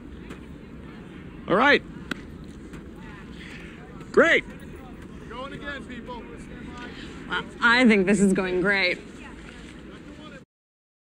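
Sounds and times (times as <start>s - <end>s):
faint distant voices: 0.0s - 10.4s.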